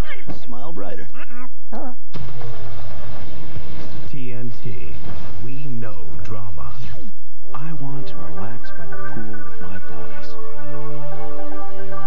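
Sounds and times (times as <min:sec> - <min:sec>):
dramatic music: 0:07.4 - 0:12.0.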